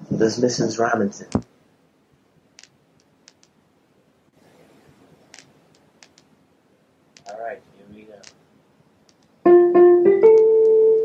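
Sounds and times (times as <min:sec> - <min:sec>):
room hiss: 0:00.0 - 0:11.0
faint small clicks: 0:02.6 - 0:03.6, 0:05.3 - 0:06.3, 0:07.2 - 0:07.4, 0:09.1 - 0:09.4.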